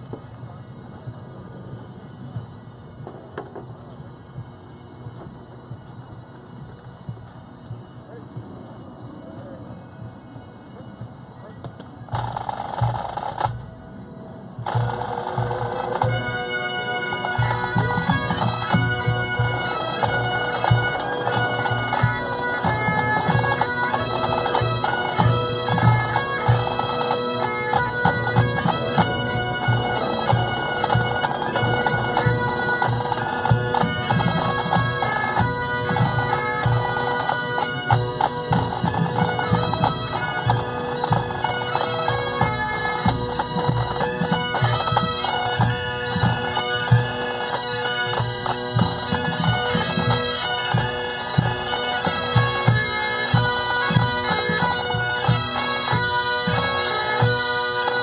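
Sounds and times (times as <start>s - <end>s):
bagpipes playing: 0.0s - 58.0s
snare tenor and bass drums: 11.7s - 13.8s, 14.6s - 58.0s.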